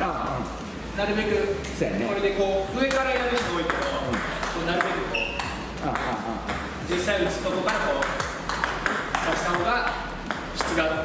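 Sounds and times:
table tennis ball hits: 2.8 - 11.0.

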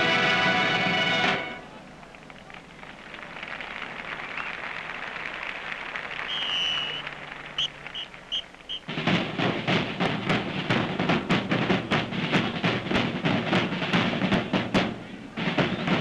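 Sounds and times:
crowd applauding: 1.7 - 9.0
drum line playing: 3.9 - 16.0
whistle blasts: 6.2 - 8.9.

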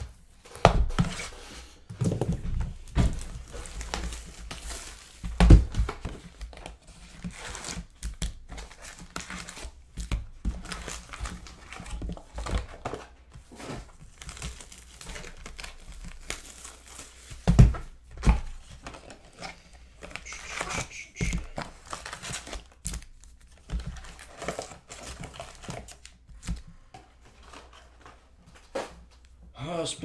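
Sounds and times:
rustling of cardboard and foil: 0.0 - 29.3.

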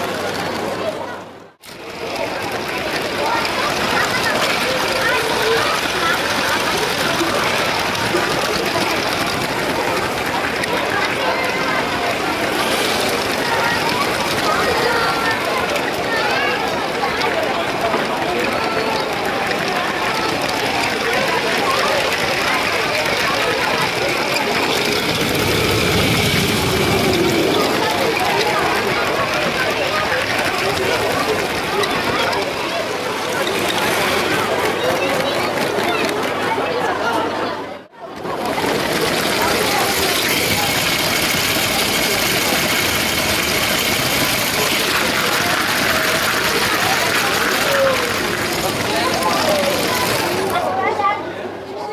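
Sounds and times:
toy train motor and wheels: 0.0 - 37.3, 38.1 - 51.2
crowd chatter: 0.0 - 51.9.

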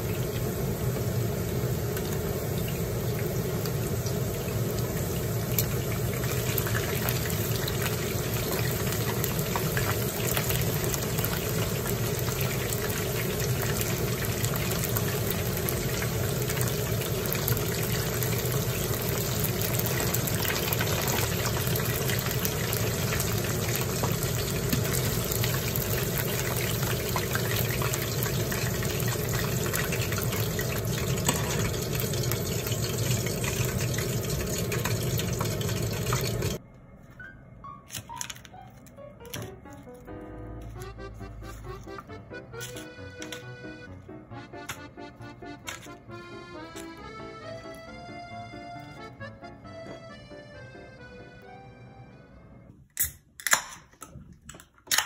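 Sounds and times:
chicken deep-frying in oil: 0.0 - 36.6.

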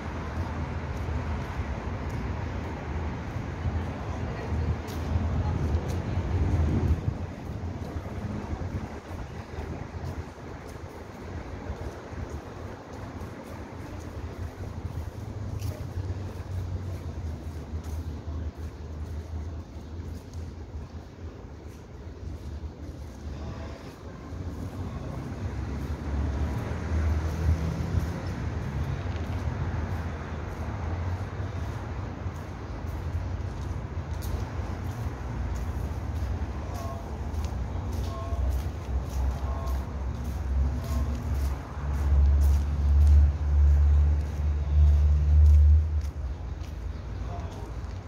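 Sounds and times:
city background rumble: 0.0 - 48.0
wind buffeting microphone: 2.1 - 17.8.

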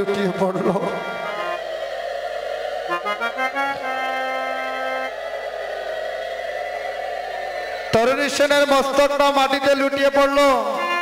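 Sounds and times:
harmonium drone: 0.0 - 11.0.

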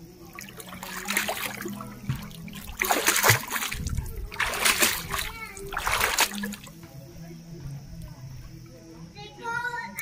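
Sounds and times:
foot splashing pool water: 0.0 - 6.9.

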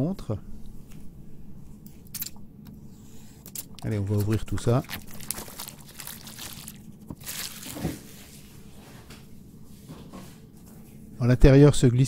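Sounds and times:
plastic film rustling: 3.7 - 8.5
cardboard box crinkling: 3.8 - 8.2.

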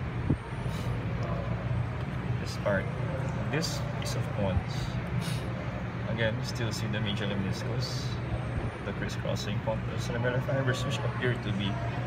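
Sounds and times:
short hiss: 5.2 - 5.5.

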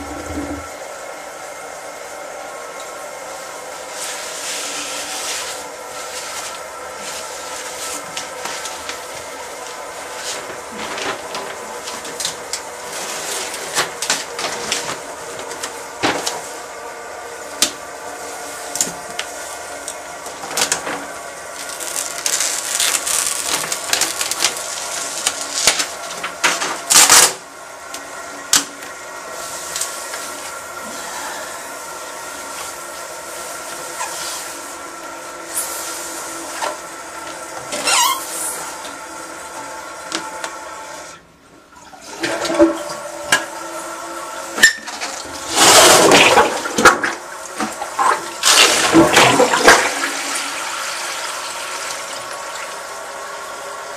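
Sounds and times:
toilet flushing: 0.0 - 53.9.

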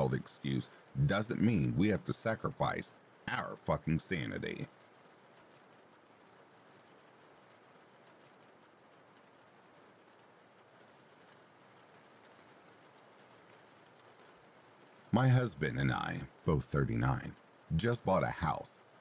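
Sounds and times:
faint steady rain: 0.0 - 19.0.

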